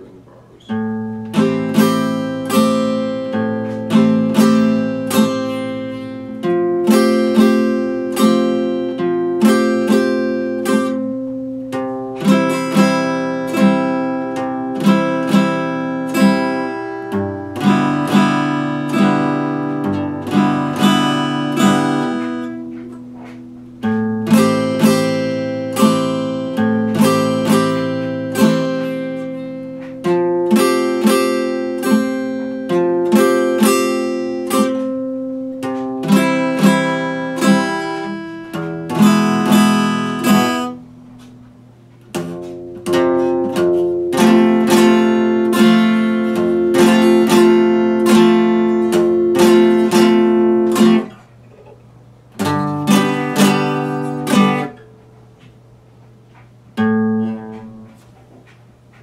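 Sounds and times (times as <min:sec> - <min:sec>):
fingerstyle acoustic guitar: 0:00.0 - 0:59.0.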